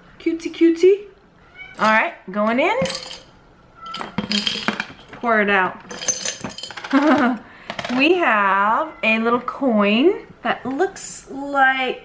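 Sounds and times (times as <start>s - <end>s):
metal trinkets clinking in glass jar: 2.8s - 5.2s, 5.8s - 7.2s.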